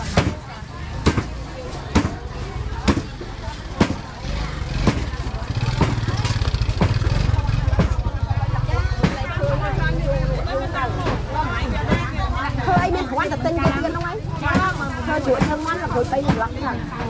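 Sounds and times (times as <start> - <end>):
people talking: 0.0 - 17.0.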